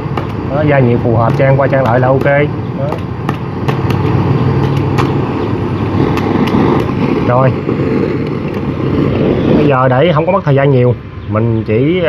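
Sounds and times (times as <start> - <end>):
sharp crackles: 0.0 - 11.0
gas blowtorch burning: 0.0 - 12.0.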